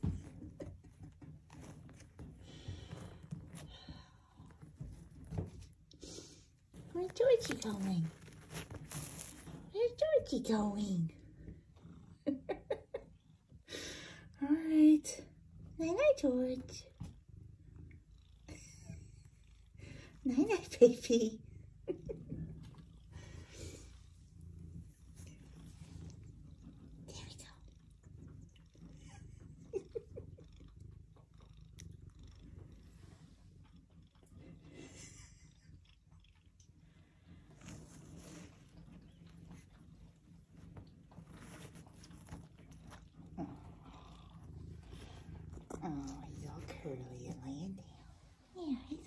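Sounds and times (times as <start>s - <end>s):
rustling of blanket and bedding: 0.0s - 11.0s, 37.4s - 49.0s
cat purring: 0.0s - 49.0s.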